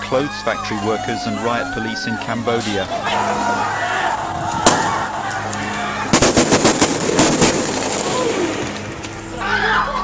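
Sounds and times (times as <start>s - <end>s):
rapid gunshots: 6.1s - 7.6s.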